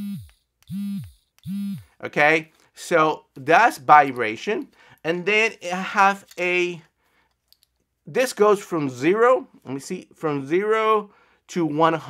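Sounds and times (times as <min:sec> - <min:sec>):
vibration motor buzzing: 0:00.0 - 0:01.9.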